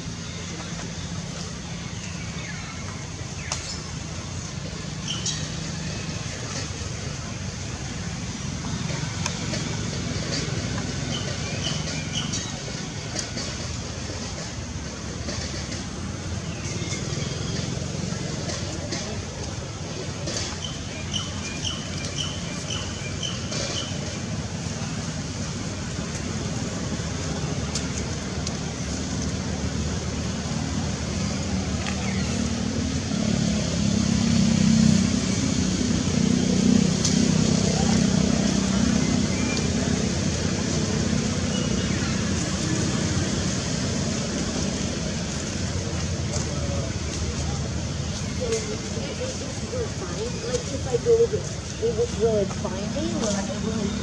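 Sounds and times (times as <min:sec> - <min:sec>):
passing traffic: 0:00.0 - 0:54.0.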